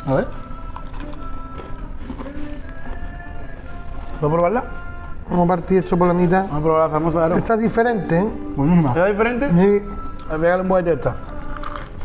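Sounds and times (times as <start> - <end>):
background music with held notes: 0.0 - 12.0
person speaking: 3.9 - 11.6.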